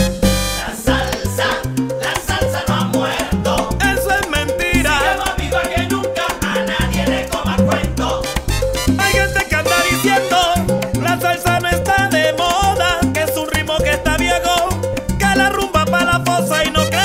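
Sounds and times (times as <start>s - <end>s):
salsa music: 0.0s - 17.0s.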